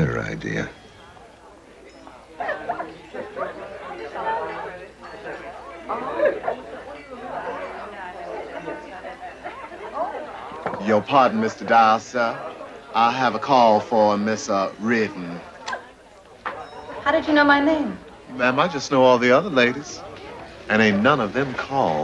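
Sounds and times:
diners chatter: 0.0 - 22.0.

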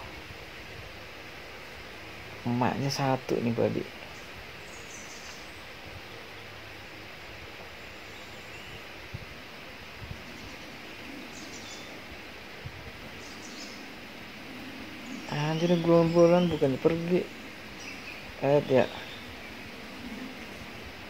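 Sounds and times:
steady background hiss: 0.0 - 21.0
faint bird chirps: 4.0 - 5.8, 10.0 - 12.1, 13.0 - 21.0.

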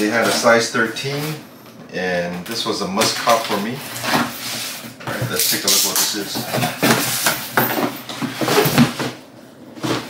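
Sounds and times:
cardboard rustling and scraping: 3.6 - 10.0.

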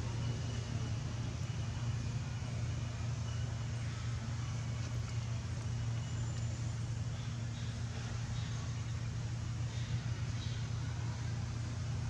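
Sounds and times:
low motor drone: 0.0 - 12.0.

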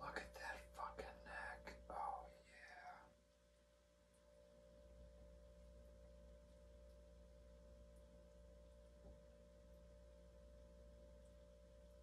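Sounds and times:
man whispering: 0.0 - 3.1
low hum: 0.0 - 12.0.

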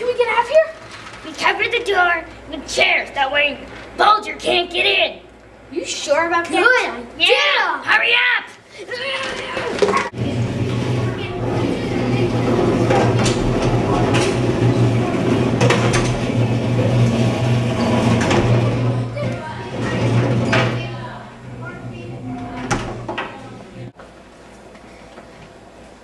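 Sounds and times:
children's excited voices: 0.0 - 10.4
metal chairs and desks clattering: 9.1 - 24.0
steady low hum: 10.1 - 26.0.

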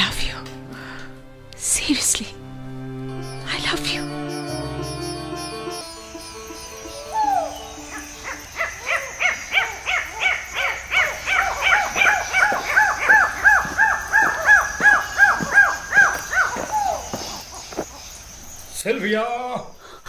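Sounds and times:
higher bird calls: 0.0 - 18.8
lower bird calls: 3.0 - 18.8.

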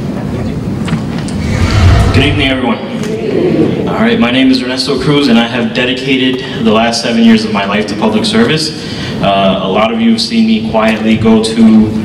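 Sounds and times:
microphone handling rumble: 1.3 - 2.7.

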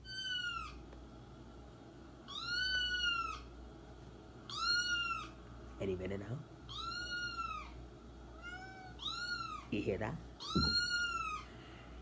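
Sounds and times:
cat meowing: 0.0 - 0.8, 2.3 - 3.5, 4.5 - 5.4, 6.7 - 7.8, 8.4 - 9.7, 10.4 - 11.5.

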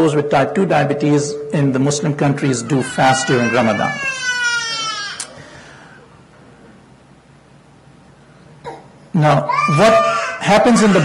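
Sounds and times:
low steady hum: 0.0 - 9.6.

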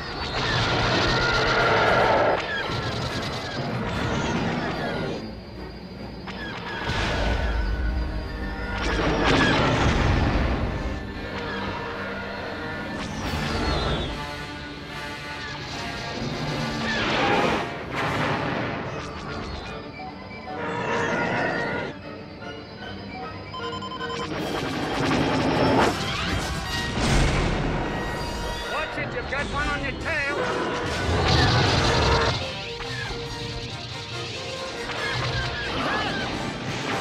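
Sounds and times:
laser fire: 0.0 - 5.2, 6.3 - 19.8, 24.3 - 37.0
orchestral film score: 0.0 - 37.0
explosions: 8.7 - 11.0, 15.7 - 19.2, 24.8 - 28.3.

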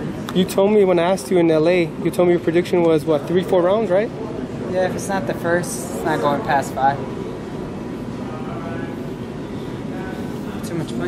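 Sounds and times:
busy indoor hallway noise: 0.0 - 11.0
faint distant voices: 0.0 - 11.0.

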